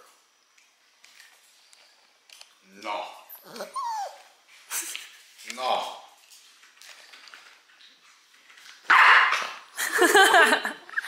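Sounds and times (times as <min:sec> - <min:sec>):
dog whining: 0:03.2 - 0:04.4.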